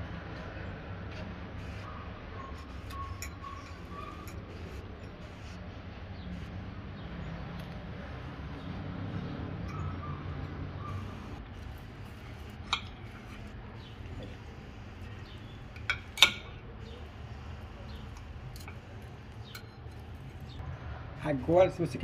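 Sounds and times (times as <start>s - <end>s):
cutlery clinking against a plate: 2.8s - 4.4s, 15.2s - 16.6s.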